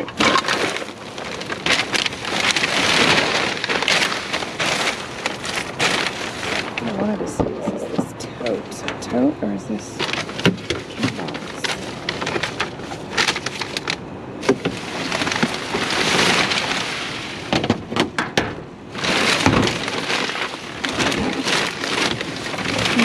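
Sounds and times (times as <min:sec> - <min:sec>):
plastic bags rustling and crinkling: 0:00.0 - 0:18.0, 0:18.9 - 0:23.0.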